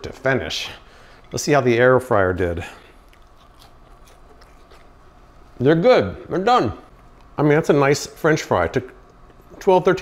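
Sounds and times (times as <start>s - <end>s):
person chewing crispy fry: 2.9s - 5.4s.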